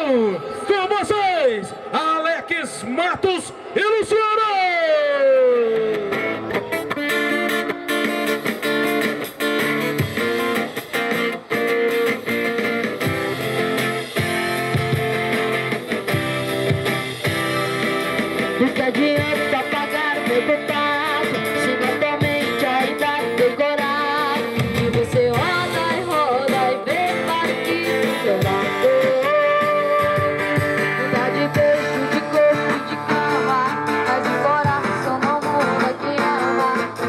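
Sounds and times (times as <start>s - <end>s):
acoustic guitars strumming: 5.8s - 37.0s
boy singing into a microphone: 18.6s - 37.0s.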